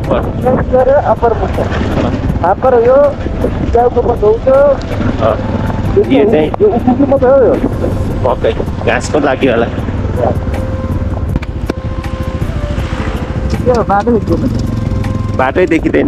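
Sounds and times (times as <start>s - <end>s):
motorcycle engine rumble: 0.0s - 16.0s
wind on microphone: 0.0s - 16.0s.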